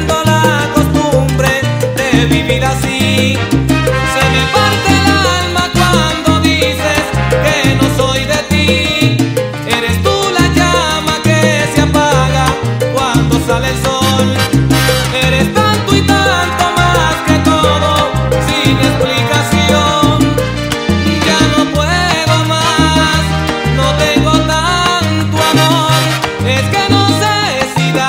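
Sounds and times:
instrumental salsa music: 0:00.0 - 0:28.0.

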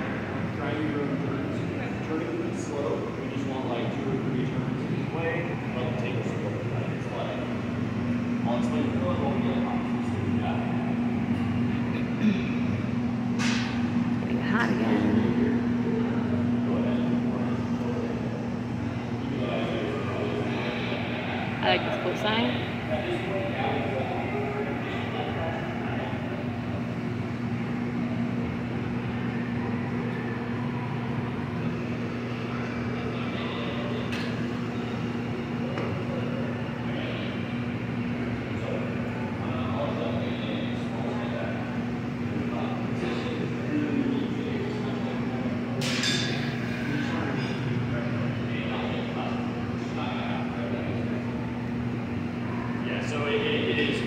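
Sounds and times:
indistinct voices: 0:00.0 - 0:13.6, 0:14.2 - 0:54.0
gas furnaces and fans roaring: 0:00.0 - 0:54.0.

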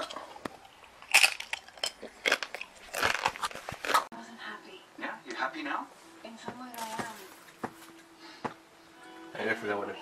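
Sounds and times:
tortilla chips crunching: 0:00.0 - 0:04.1.

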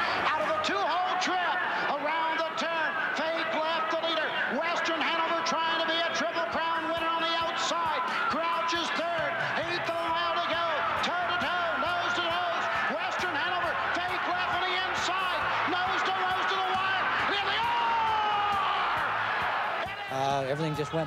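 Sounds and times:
announcer calling a race: 0:00.0 - 0:18.3.

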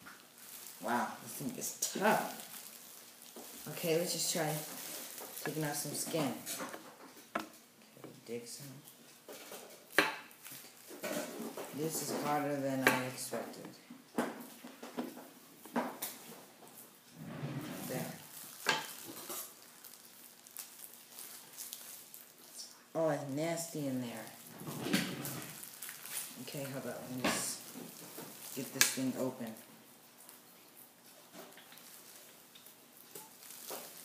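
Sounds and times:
plastic gloves crinkling: 0:00.0 - 0:34.0.

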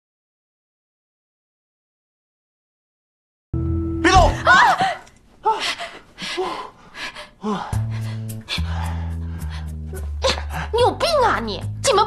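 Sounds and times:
woman gasping: 0:04.1 - 0:10.8.

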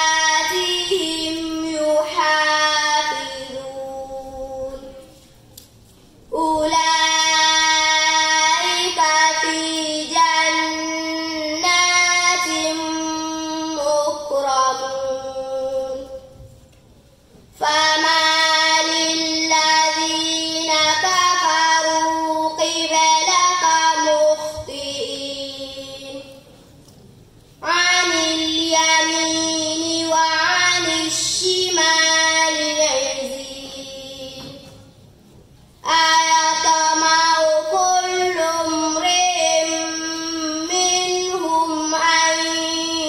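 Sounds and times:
girl chanting melodically: 0:00.0 - 0:05.3, 0:06.3 - 0:16.5, 0:17.5 - 0:26.5, 0:27.6 - 0:34.9, 0:35.8 - 0:43.0.

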